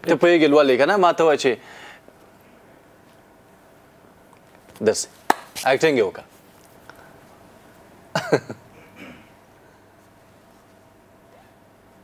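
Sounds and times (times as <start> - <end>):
person coughing: 8.2 - 9.4.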